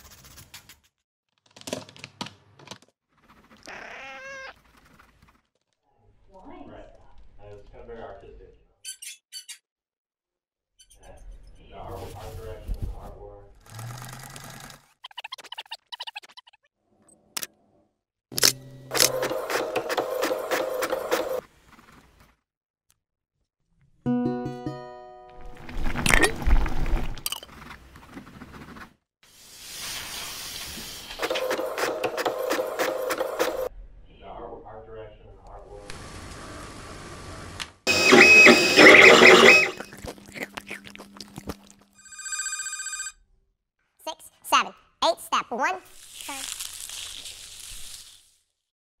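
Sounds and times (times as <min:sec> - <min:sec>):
sewing machine stitching: 0:13.7 - 0:14.9, 0:18.9 - 0:21.4, 0:31.2 - 0:33.7, 0:37.9 - 0:39.8
pulsing electronic ring: 0:37.9 - 0:39.8
high steady tone: 0:37.9 - 0:39.9.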